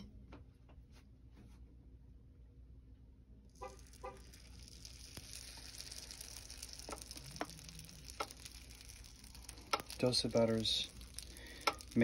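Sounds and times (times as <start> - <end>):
batter sizzling on grill plate: 3.5 - 12.0.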